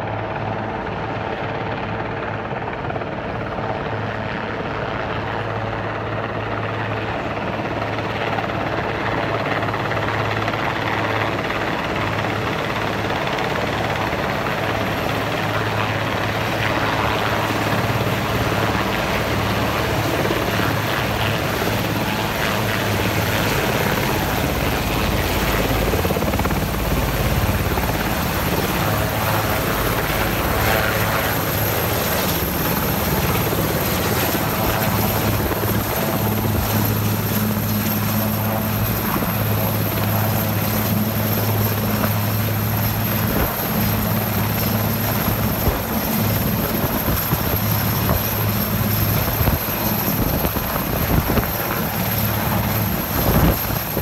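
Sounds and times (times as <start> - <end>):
helicopter rotor and engine noise: 0.0 - 54.0.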